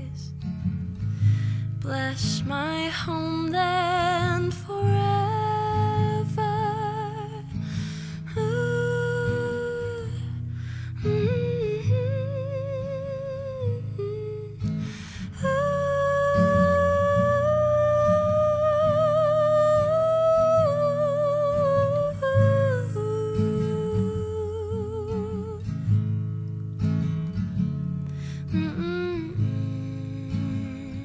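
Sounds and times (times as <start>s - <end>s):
soft acoustic guitar: 0.0s - 31.0s.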